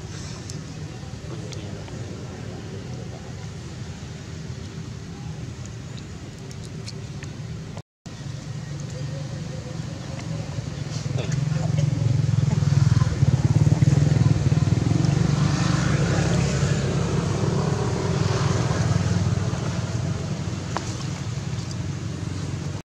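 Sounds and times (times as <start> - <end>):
motor vehicle passing: 9.2 - 22.8.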